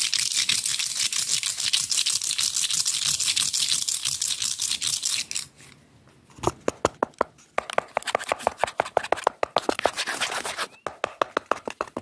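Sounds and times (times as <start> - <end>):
rapid scratching on cardboard tube: 7.6 - 12.0.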